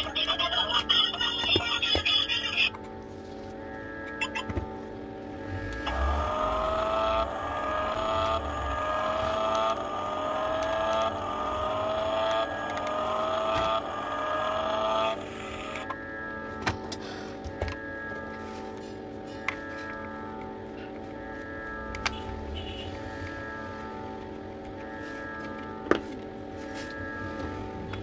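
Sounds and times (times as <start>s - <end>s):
background music: 0.0s - 28.0s
toy car motor whine: 5.5s - 15.9s.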